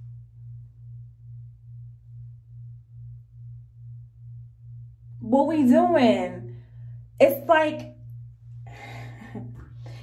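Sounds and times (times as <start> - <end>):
low pulsing hum: 0.0 - 10.0.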